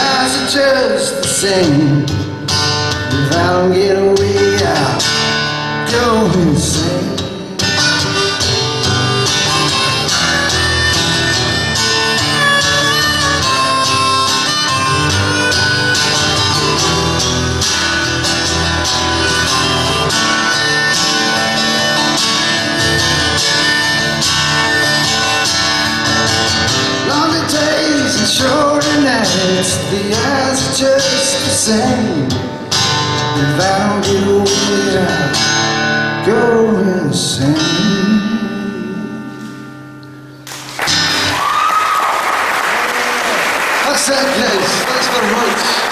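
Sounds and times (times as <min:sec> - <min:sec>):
strummed acoustic guitar: 0:00.0 - 0:41.3
harmonica solo: 0:07.4 - 0:27.1.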